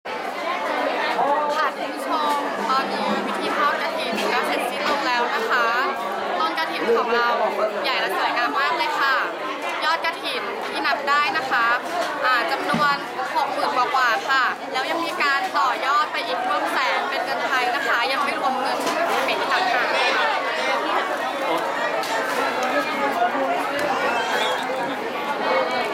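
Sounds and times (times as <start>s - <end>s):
overlapping voices chattering: 0.1s - 25.9s
people talking: 0.4s - 25.9s.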